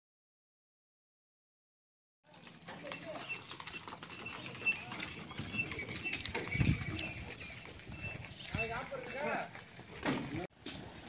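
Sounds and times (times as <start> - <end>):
hooves clopping on dirt: 2.2 - 11.0.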